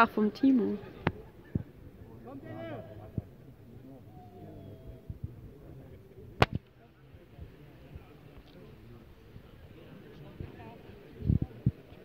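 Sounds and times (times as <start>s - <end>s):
low outdoor rumble: 0.8s - 12.0s
sharp crack: 6.4s - 6.7s.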